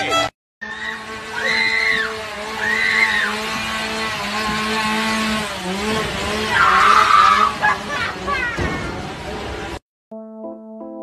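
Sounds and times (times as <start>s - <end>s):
women screaming: 0.6s - 3.4s, 6.5s - 8.6s.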